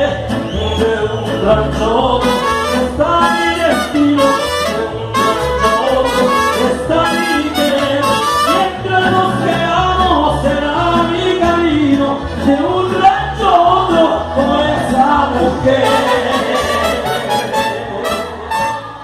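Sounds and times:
bass guitar beat: 0:00.0 - 0:19.0
mariachi band playing: 0:00.0 - 0:19.0
strummed guitars: 0:00.0 - 0:19.0
trumpets: 0:02.2 - 0:08.8, 0:15.8 - 0:19.0.

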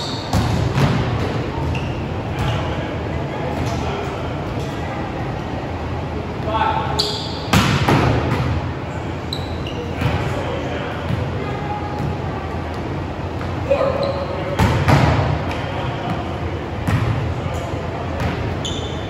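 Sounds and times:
ball bouncing on gym floor: 0:00.2 - 0:01.8, 0:07.5 - 0:08.6, 0:14.6 - 0:17.3.

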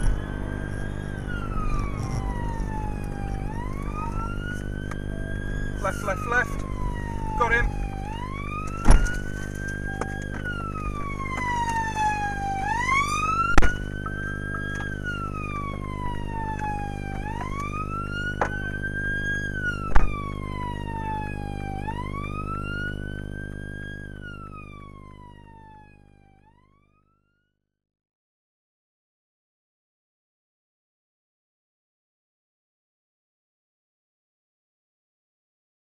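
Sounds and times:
low drone: 0:00.0 - 0:23.2
police siren wailing: 0:00.0 - 0:27.4.

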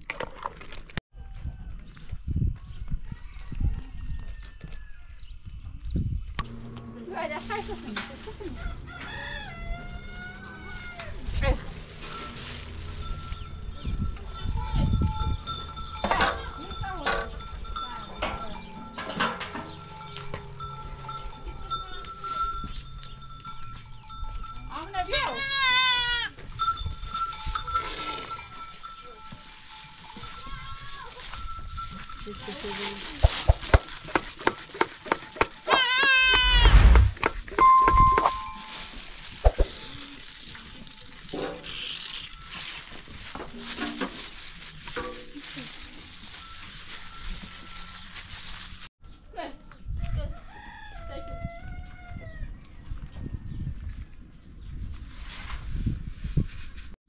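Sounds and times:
rooster crowing: 0:02.9 - 0:05.2, 0:08.3 - 0:11.2, 0:50.1 - 0:52.6
goats bleating: 0:25.4 - 0:26.4, 0:35.6 - 0:36.7
low rumbling bumps: 0:36.4 - 0:38.8.

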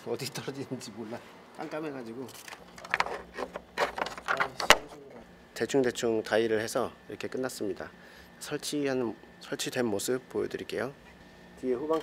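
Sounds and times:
cable scraping against plastic: 0:02.3 - 0:04.6.

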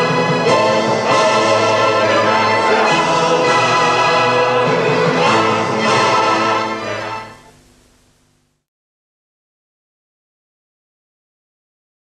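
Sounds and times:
orchestra holding a chord: 0:00.0 - 0:07.7.

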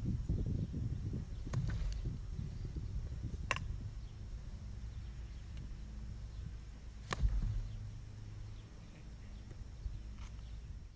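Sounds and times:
low outdoor rumble: 0:00.0 - 0:10.9.

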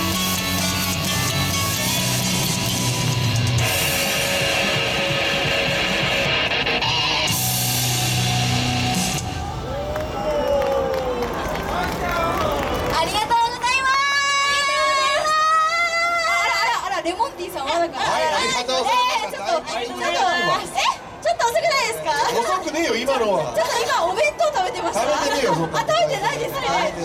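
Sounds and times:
crowd noise: 0:00.0 - 0:27.0.

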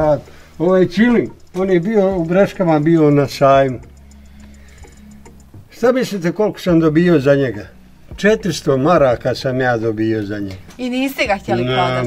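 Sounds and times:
man talking: 0:00.0 - 0:03.9, 0:05.7 - 0:10.6, 0:11.5 - 0:12.0
faint ticks: 0:00.3 - 0:05.7.

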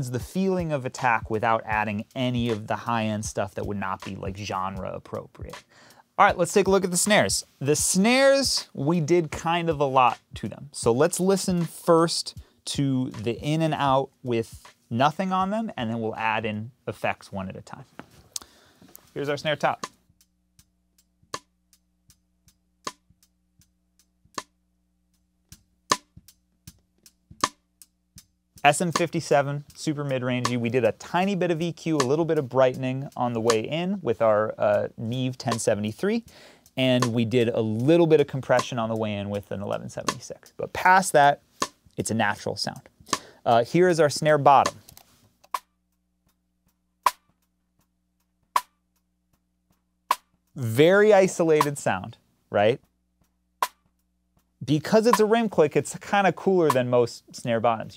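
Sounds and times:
snare drum rim clicks: 0:39.6 - 0:42.0, 0:42.8 - 0:45.7, 0:47.0 - 0:47.5, 0:48.6 - 0:48.8, 0:50.1 - 0:52.1, 0:53.6 - 0:54.0, 0:54.7 - 0:55.5, 0:56.6 - 0:57.0.

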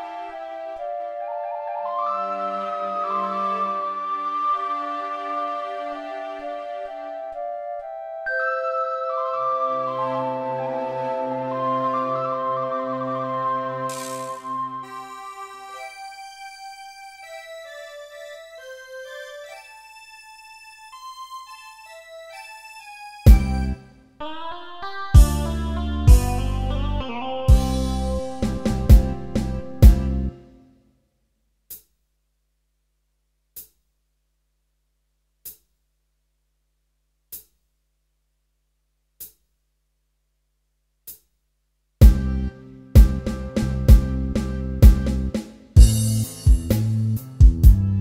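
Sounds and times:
synthesized karaoke melody: 0:07.3 - 0:19.8, 0:23.3 - 0:30.6, 0:45.8 - 0:48.0
hi-hat tick: 0:31.7 - 0:31.9, 0:39.2 - 0:39.4.

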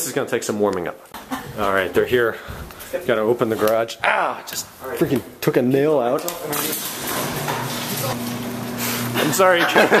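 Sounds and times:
garage door opener humming: 0:06.3 - 0:09.5.

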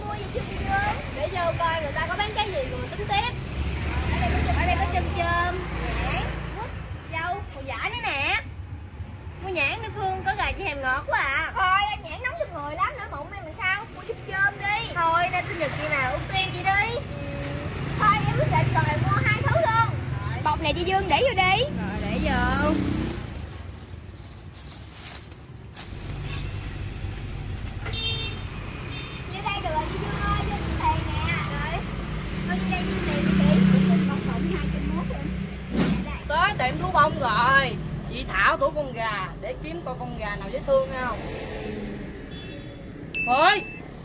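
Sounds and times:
motorbike engines passing: 0:00.0 - 0:44.0.

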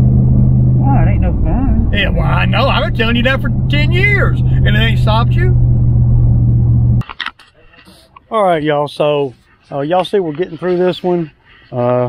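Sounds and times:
truck engine drone: 0:00.0 - 0:07.0
road noise: 0:00.0 - 0:12.0.

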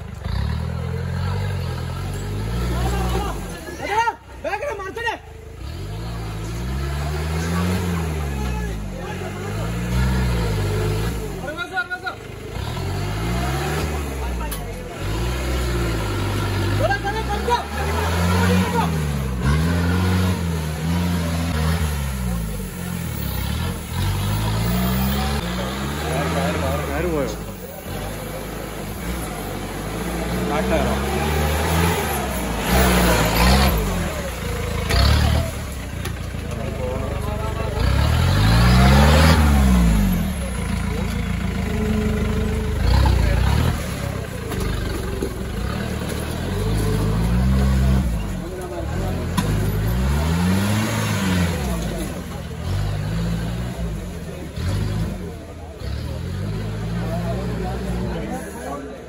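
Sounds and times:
off-road engine revving: 0:00.0 - 0:59.0
spectators' voices: 0:00.0 - 0:59.0.

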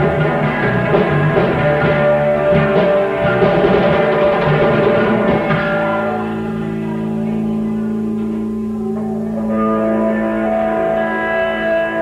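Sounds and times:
electric guitars ringing chord: 0:00.0 - 0:12.0.

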